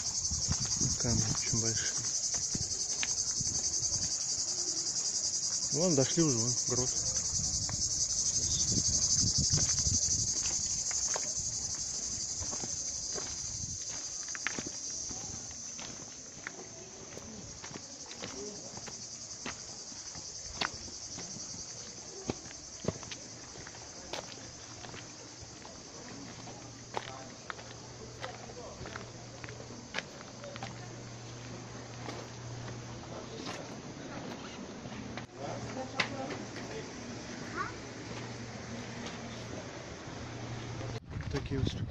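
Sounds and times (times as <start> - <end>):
footsteps on stony path: 0.0 - 5.9, 7.1 - 35.8
cicadas shrilling: 0.0 - 34.6, 35.2 - 41.0.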